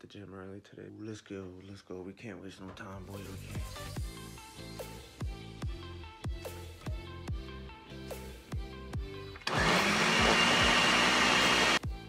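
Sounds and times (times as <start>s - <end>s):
blender motor running: 9.4s - 11.8s.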